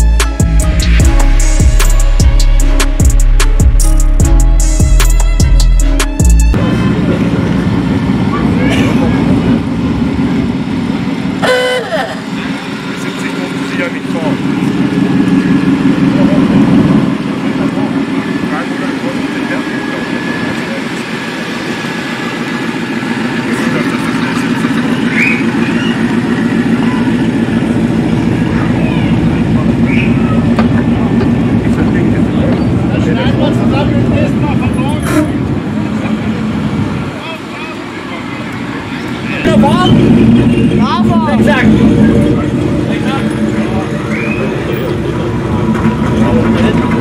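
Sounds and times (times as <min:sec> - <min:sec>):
vans driving slowly past: 0:06.5 - 0:47.0
people talking: 0:06.6 - 0:09.7, 0:11.4 - 0:21.7, 0:23.0 - 0:45.4, 0:46.0 - 0:47.0
short horn toot: 0:11.4 - 0:12.2, 0:35.0 - 0:35.5.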